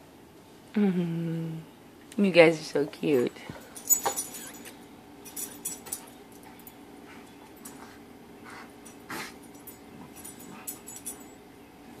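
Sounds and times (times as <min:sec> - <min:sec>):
dogs snuffling and mouthing: 0:03.8 - 0:11.4.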